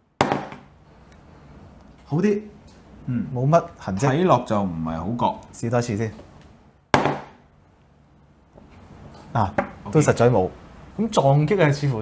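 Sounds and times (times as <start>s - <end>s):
ball knocking on floor: 0.2s - 0.7s, 6.9s - 7.4s, 9.5s - 9.8s.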